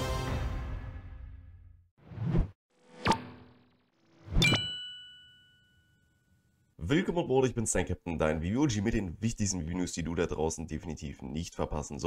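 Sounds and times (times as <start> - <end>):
logo chime ding: 4.4 - 6.2.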